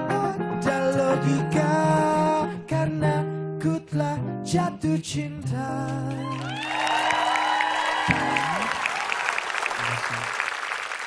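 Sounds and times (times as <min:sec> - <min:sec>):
man singing with acoustic guitar: 0:00.0 - 0:06.4
audience applause: 0:06.1 - 0:11.0.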